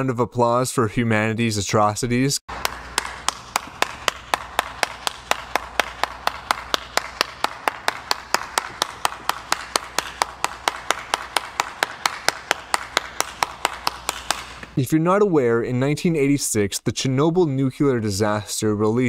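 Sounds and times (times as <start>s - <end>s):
person clapping hands: 2.5s - 14.8s.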